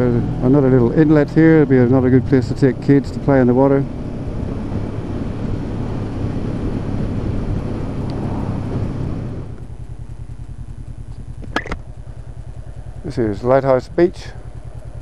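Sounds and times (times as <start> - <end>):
motorcycle engine: 0.0 - 15.0
road and wind noise: 0.0 - 15.0.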